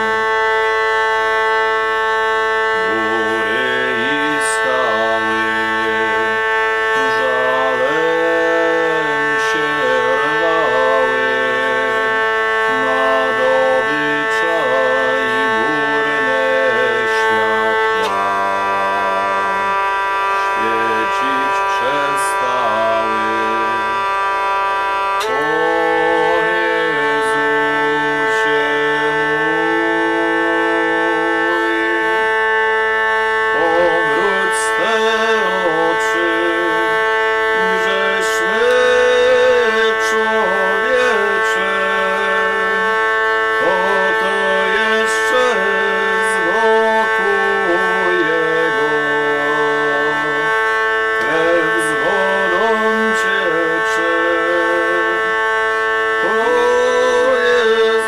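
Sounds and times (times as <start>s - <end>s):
hurdy-gurdy drone and melody: 0.0s - 58.0s.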